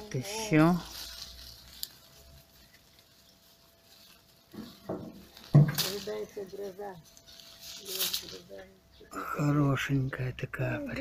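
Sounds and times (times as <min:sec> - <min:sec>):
rustling leaves and twigs: 0:00.0 - 0:11.0.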